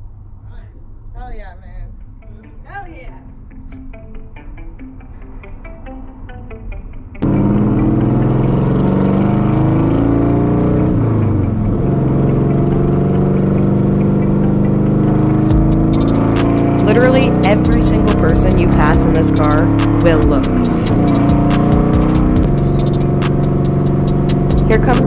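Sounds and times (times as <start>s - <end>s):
car engine running under load: 7.2s - 25.0s
person speaking: 16.8s - 21.8s, 24.5s - 25.0s.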